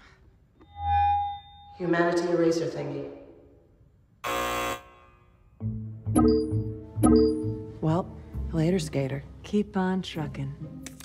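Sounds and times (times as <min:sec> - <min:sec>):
electronic buzzer tone: 0:00.6 - 0:01.8, 0:04.2 - 0:05.4.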